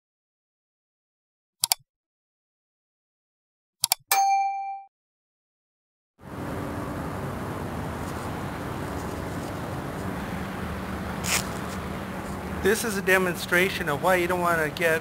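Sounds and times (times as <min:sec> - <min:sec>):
notification bell ding: 0:04.1 - 0:04.9
steady hiss with low hum: 0:06.2 - 0:15.0.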